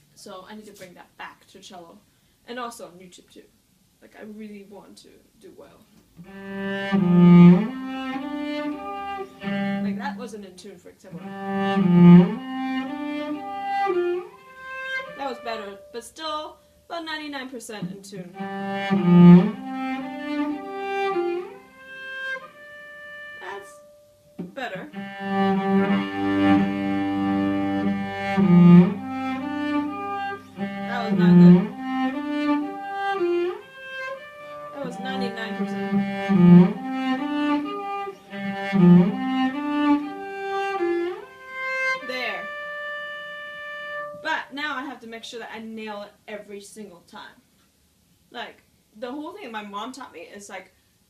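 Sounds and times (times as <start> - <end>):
bowed cello melody: 6.2 - 10.4, 11.0 - 16.4, 17.7 - 44.4.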